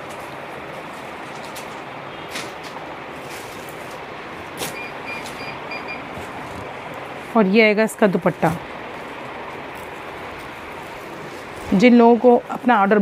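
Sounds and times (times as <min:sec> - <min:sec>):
heavy fabric rustling: 0:00.0 - 0:07.8, 0:08.4 - 0:13.0.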